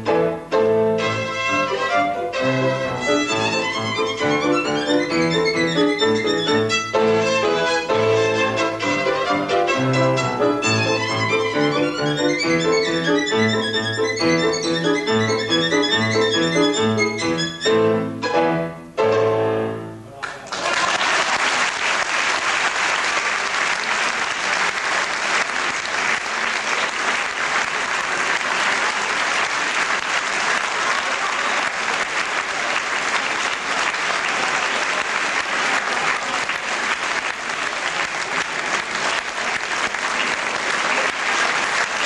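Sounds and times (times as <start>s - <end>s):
violin and piano piece: 0.0s - 20.1s
audience applauding: 3.0s - 16.8s, 20.2s - 42.0s.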